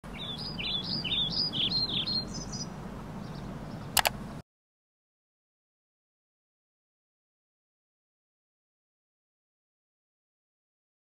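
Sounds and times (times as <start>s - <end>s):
low outdoor background noise: 0.0s - 4.4s
songbird chirping: 0.0s - 4.4s
sharp click: 4.0s - 4.2s.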